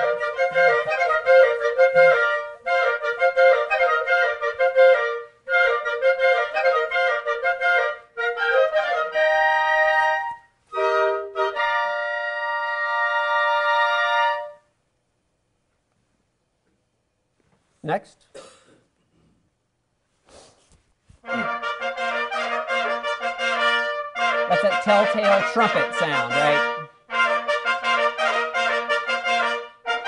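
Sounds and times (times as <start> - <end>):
solo flute playing: 0.0 - 14.7, 21.2 - 30.0.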